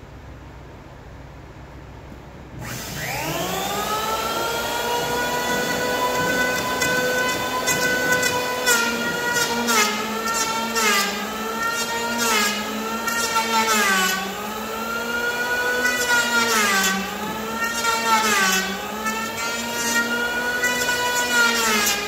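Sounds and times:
electric planer motor whine: 2.6 - 22.0
planer shaving wood: 2.6 - 22.0.

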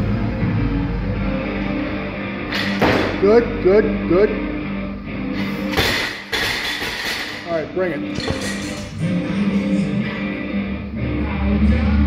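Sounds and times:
background guitar music: 0.0 - 12.0.

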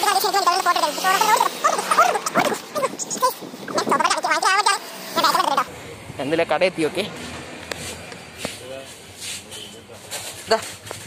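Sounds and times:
dog whimpering and yipping: 0.0 - 5.7
person's voice: 0.0 - 7.1.

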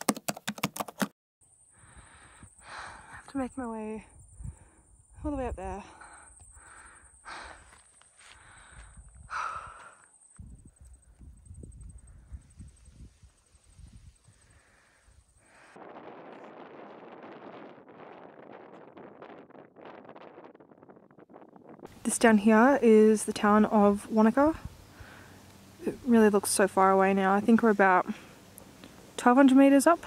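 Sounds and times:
person breathing heavily: 1.7 - 3.3, 5.9 - 10.1, 14.4 - 15.8, 24.9 - 25.5
footsteps on dirt trail: 7.4 - 10.0
wind rushing: 10.4 - 22.1.

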